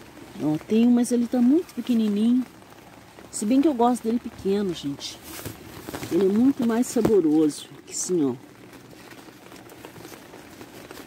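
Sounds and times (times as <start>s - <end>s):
light rain pattering: 0.0s - 11.0s.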